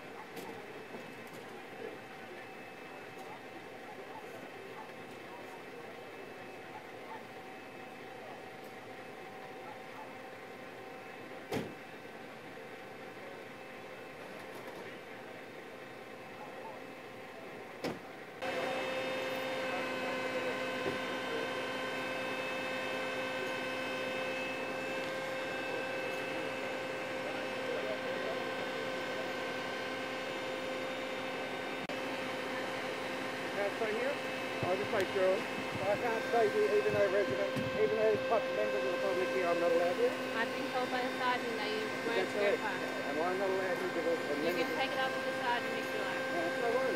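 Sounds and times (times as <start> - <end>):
emergency vehicles idling: 0.0 - 46.9
fire trucks idling: 0.0 - 46.9.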